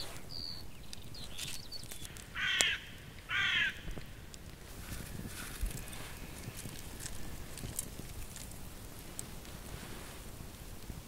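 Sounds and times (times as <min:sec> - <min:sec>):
faint outdoor background: 0:00.0 - 0:11.0
crow cawing: 0:02.3 - 0:03.9.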